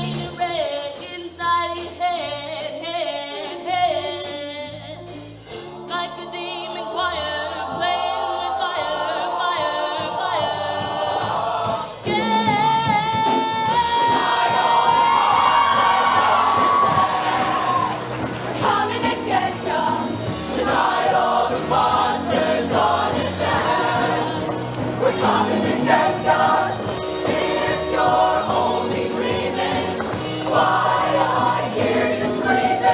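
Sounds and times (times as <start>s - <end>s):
choir singing over a beat: 5.1s - 32.9s.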